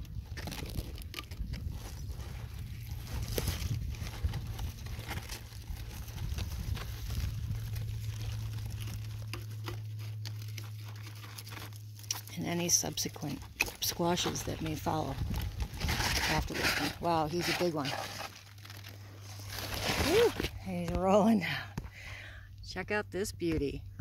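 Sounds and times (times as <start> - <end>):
vines and leaves rustling: 0.0 - 21.8
stem crackling and snapping: 0.0 - 21.9
low hum: 0.0 - 24.0.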